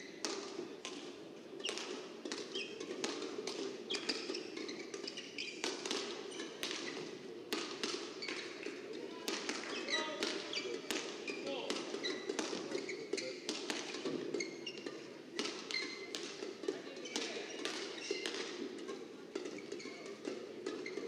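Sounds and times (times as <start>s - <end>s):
shoes squeaking on court: 0.0s - 21.0s
rackets hitting shuttlecocks: 0.1s - 21.0s.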